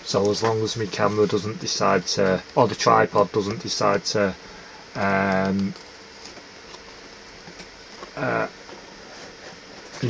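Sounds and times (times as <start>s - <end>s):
faint room noise hiss: 0.0s - 10.0s.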